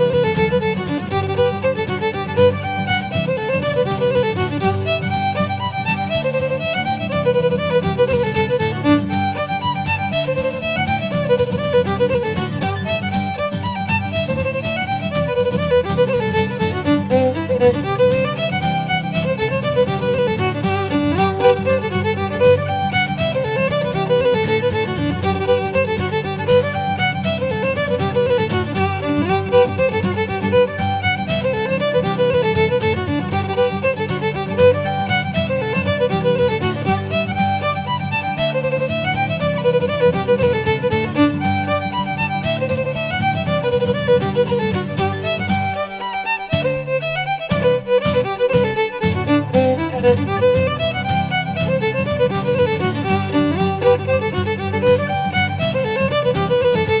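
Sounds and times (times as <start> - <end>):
fiddle melody: 0.0 - 57.0.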